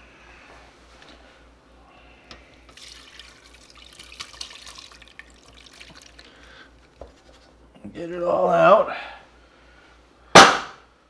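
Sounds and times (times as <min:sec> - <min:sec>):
fat pouring through metal strainer: 0:02.7 - 0:07.5.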